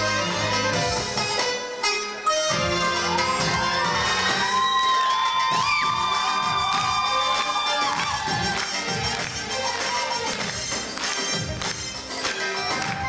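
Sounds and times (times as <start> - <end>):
oriental dance music: 0.0 - 13.0
audience cheering: 3.4 - 10.6.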